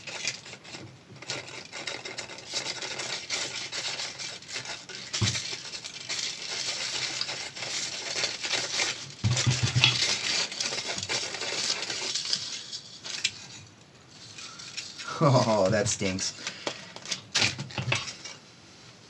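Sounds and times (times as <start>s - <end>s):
speaker cone tearing and crackling: 0.0s - 13.6s, 14.2s - 18.4s.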